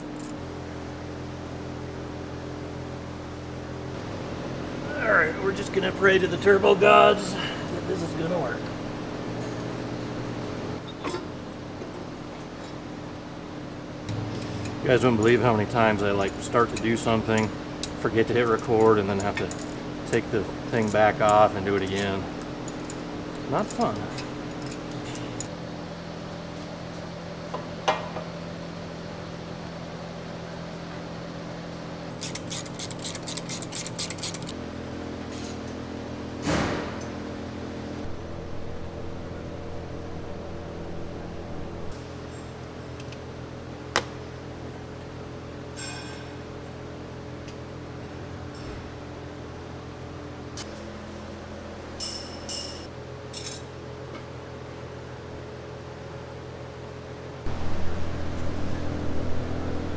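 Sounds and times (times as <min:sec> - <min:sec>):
steady low hum: 0:00.0 - 0:59.9
ratchet clicks: 0:32.2 - 0:34.6.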